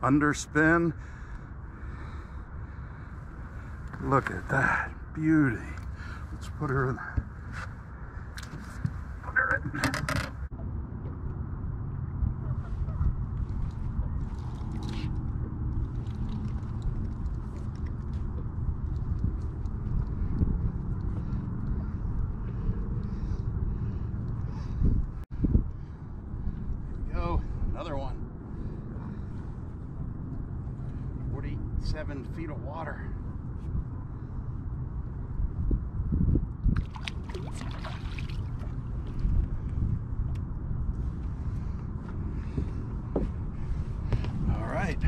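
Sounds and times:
wind buffeting microphone: 0:00.6 - 0:45.0.

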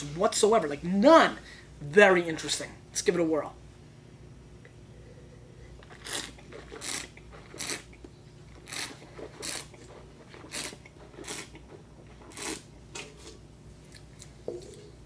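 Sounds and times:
person slurping wine: 0:05.0 - 0:08.0, 0:08.6 - 0:13.4.

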